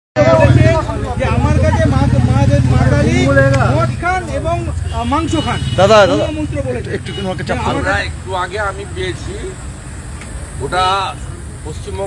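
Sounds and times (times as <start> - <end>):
man speaking: 0.2 - 9.6, 10.6 - 12.0.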